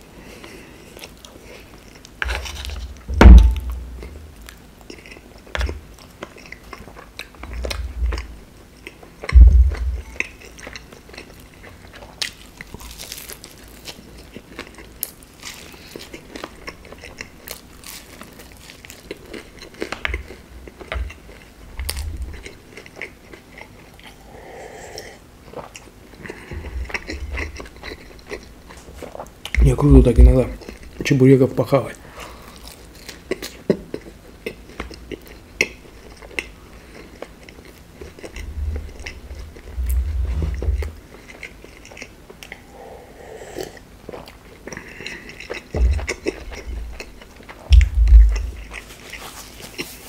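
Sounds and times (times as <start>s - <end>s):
chewing crispy pastry: 0.0s - 3.1s, 4.0s - 50.0s
dull low thumps: 3.1s - 4.0s, 9.3s - 10.1s, 38.4s - 41.0s, 47.7s - 48.6s.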